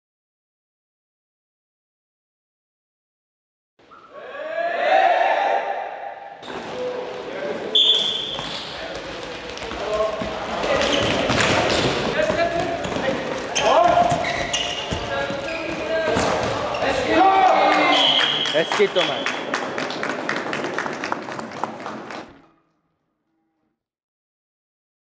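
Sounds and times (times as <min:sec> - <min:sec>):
players shouting: 0:04.1 - 0:08.4, 0:09.7 - 0:19.3
high whistle blowing: 0:07.7 - 0:08.4, 0:17.8 - 0:19.4.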